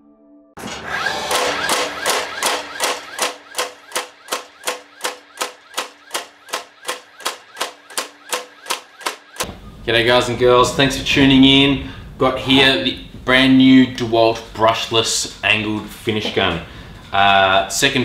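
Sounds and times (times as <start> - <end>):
nail gun shots: 1.3 - 9.5.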